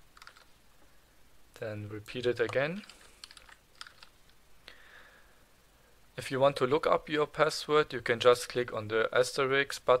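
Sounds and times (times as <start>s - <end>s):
keyboard typing: 0.1s - 0.5s, 2.4s - 4.4s.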